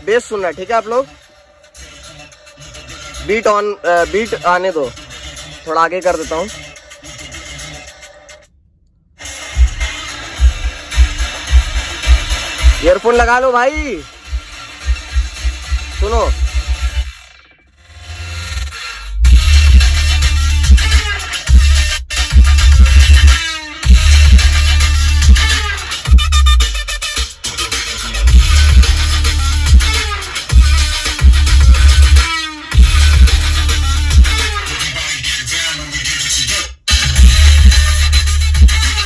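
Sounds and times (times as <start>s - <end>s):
electronic dance music on car stereo: 0.0s - 39.0s.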